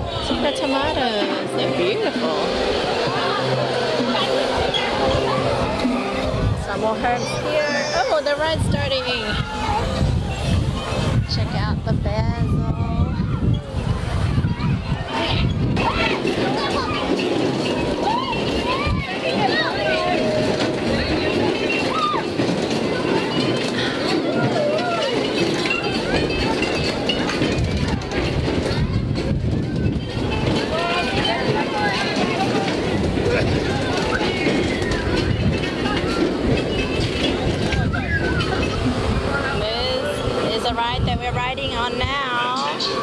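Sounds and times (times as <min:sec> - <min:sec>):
children calling: 0:00.0 - 0:43.0
low rumble of spinning ride: 0:00.0 - 0:43.0.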